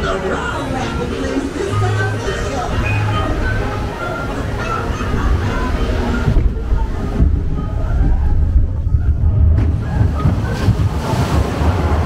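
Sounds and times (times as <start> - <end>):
faint ride music: 0.0 - 12.0
rushing water and boat rumble: 0.0 - 12.0.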